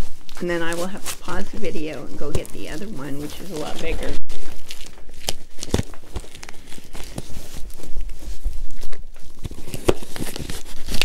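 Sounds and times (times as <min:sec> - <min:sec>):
cardboard and tape ripping: 0:00.0 - 0:11.0.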